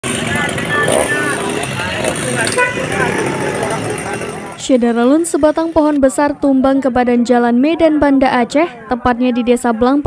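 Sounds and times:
engine and traffic noise: 0:00.0 - 0:10.0
people talking: 0:00.1 - 0:10.0.

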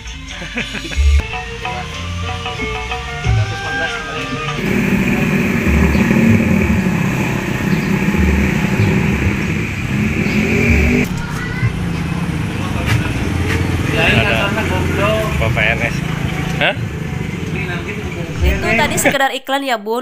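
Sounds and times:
small vehicle engine running: 0:02.4 - 0:19.2
quiet engine hum: 0:04.2 - 0:19.2
man talking: 0:12.6 - 0:16.0, 0:16.6 - 0:16.9, 0:17.5 - 0:19.2.

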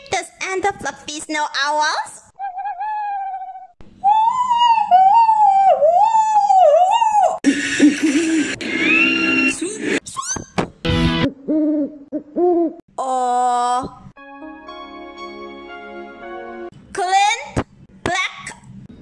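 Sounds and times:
owl hooting: 0:11.3 - 0:12.8.

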